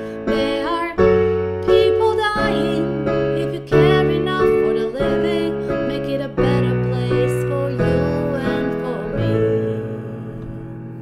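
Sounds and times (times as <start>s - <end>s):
woman singing: 0.0s - 10.8s
piano chords: 0.0s - 11.0s.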